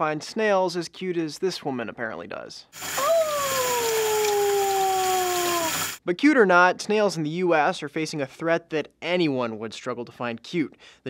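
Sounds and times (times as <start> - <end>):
tap water running into sink: 2.8 - 6.0
woman cooing high-pitched: 3.0 - 5.8.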